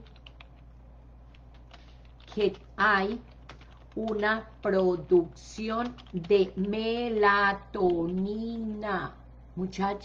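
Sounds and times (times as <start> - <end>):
computer keys clicking: 0.0 - 8.4
low electrical hum: 0.0 - 10.0.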